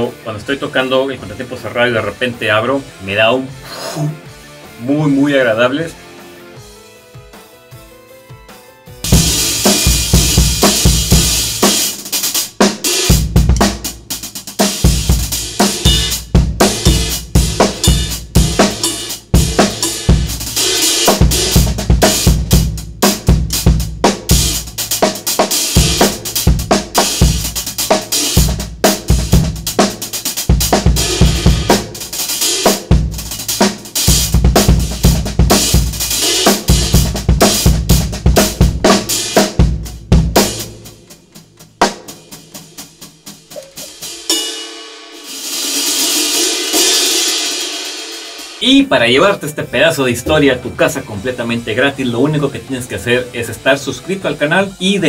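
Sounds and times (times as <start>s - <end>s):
drum kit playing a groove: 0.0s - 55.0s.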